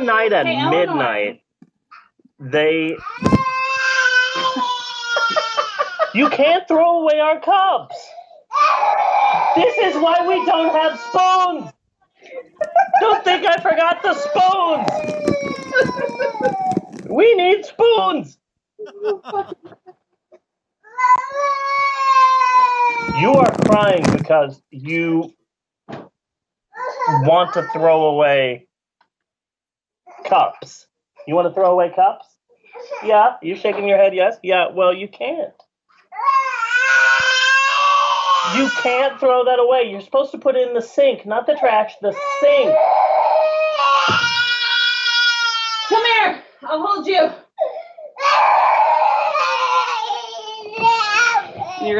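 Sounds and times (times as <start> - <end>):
toddler crying: 3.0 - 6.3, 8.5 - 11.2, 13.9 - 17.1, 20.9 - 23.6, 26.8 - 27.8, 36.1 - 38.9, 42.2 - 46.0, 47.6 - 51.9.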